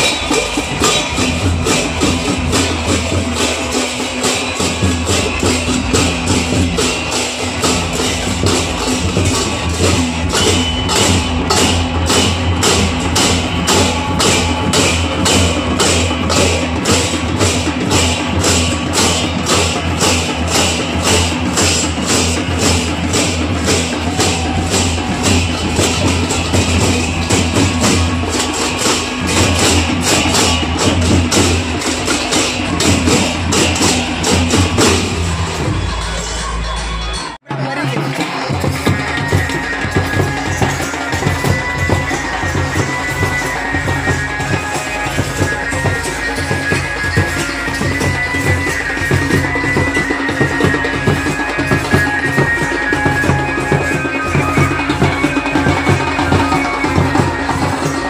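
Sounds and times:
brass hand cymbals clashing: 0:00.0 - 0:37.4, 0:38.0 - 0:58.0.

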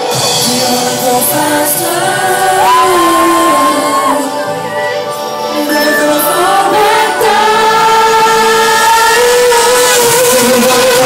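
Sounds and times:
backing track: 0:00.0 - 0:11.0
harmony vocal line: 0:00.0 - 0:11.0
male singers singing pop vocals: 0:00.0 - 0:11.0.

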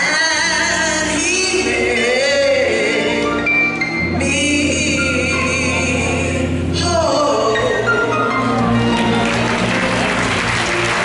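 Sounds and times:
woman singing gospel: 0:00.0 - 0:03.4, 0:04.2 - 0:08.0
instrumental accompaniment: 0:00.4 - 0:11.0.

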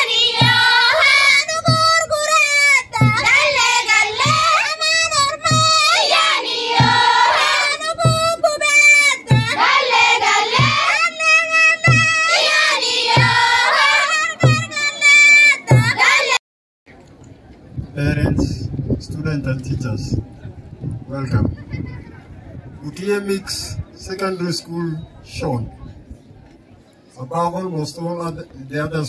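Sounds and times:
girls singing together: 0:00.0 - 0:16.4
low thumping beat: 0:00.2 - 0:02.3, 0:02.9 - 0:11.0, 0:11.8 - 0:14.8.

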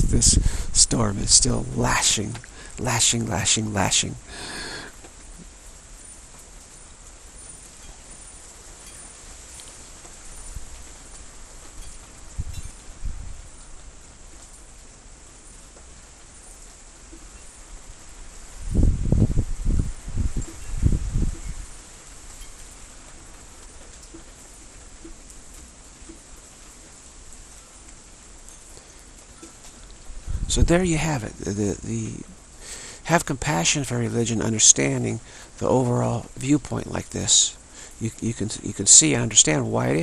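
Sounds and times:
wind buffeting microphone: 0:00.0 - 0:04.0, 0:11.7 - 0:13.6, 0:17.9 - 0:22.6, 0:30.0 - 0:31.6
storm wind hissing: 0:00.0 - 0:06.0, 0:17.9 - 0:22.9, 0:30.0 - 0:39.6.

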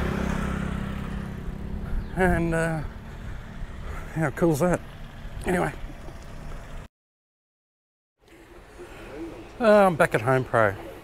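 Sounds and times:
motor scooter engine: 0:00.0 - 0:06.9.

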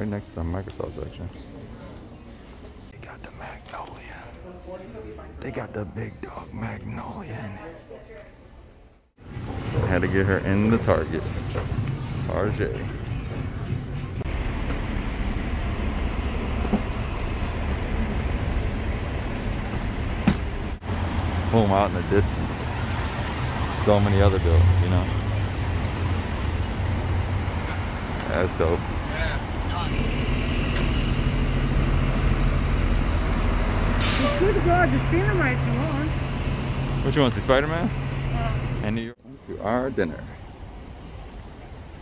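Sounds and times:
quiet shop ambience: 0:00.0 - 0:14.2
city street traffic: 0:00.0 - 0:42.0
vehicle engines humming: 0:09.2 - 0:39.1.

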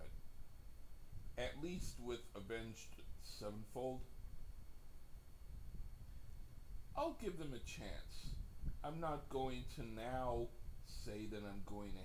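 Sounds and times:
faint low rumble: 0:00.0 - 0:12.0.

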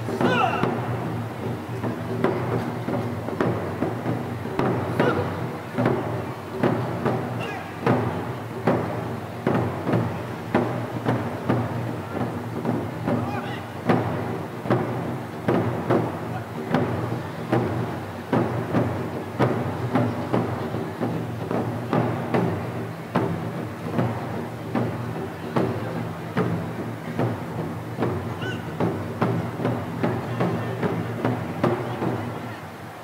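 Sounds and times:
taiko drums: 0:00.0 - 0:33.0.

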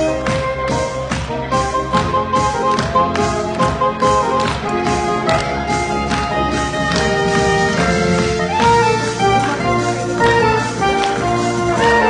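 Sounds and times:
saxophone ensemble playing: 0:00.0 - 0:12.0
steady drum beat: 0:00.0 - 0:12.0.

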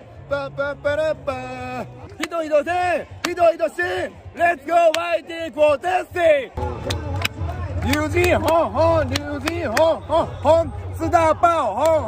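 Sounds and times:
stadium crowd rumble: 0:00.0 - 0:12.0
man shouting rhythmic chant: 0:00.4 - 0:12.0
sharp claps: 0:03.2 - 0:03.4, 0:06.6 - 0:10.0.

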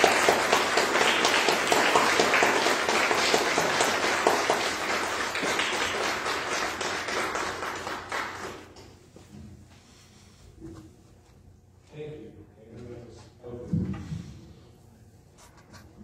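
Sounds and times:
congregation applauding: 0:00.0 - 0:08.8.

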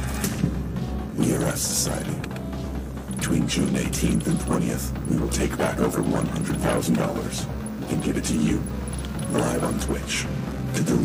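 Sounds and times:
electronically disguised voice speaking: 0:01.2 - 0:02.3, 0:03.2 - 0:11.0.

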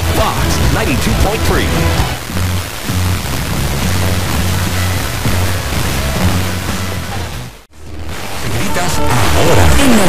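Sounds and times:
radio music with bass line: 0:00.0 - 0:10.0
static hiss: 0:00.0 - 0:10.0.

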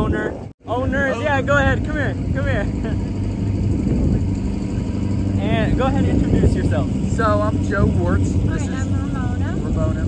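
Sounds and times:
engine idling hum: 0:00.6 - 0:10.0.

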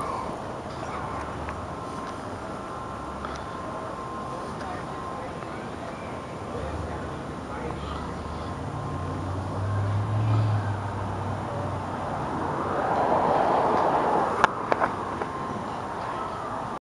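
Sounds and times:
car engine humming: 0:00.0 - 0:16.8
rushing noise: 0:00.0 - 0:16.8.

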